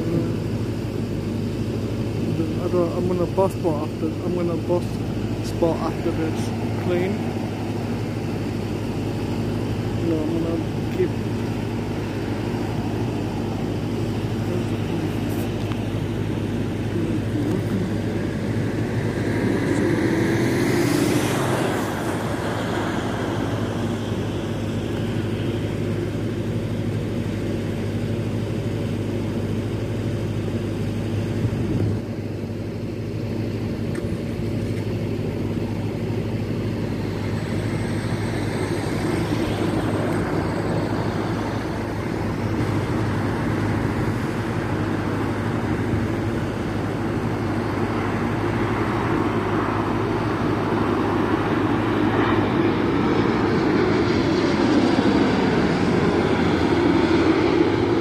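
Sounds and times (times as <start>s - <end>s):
jet airliner engine noise: 0.0s - 58.0s
road traffic hum: 0.0s - 58.0s.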